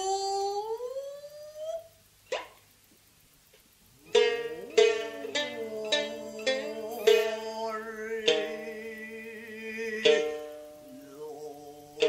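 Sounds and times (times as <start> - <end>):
sharp shamisen stroke: 4.0 - 12.0
woman chanting a long note: 4.5 - 12.0.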